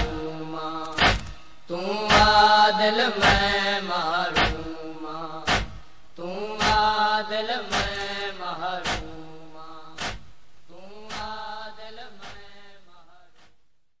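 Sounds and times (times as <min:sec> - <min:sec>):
rhythmic chest-beating: 0:00.0 - 0:12.6.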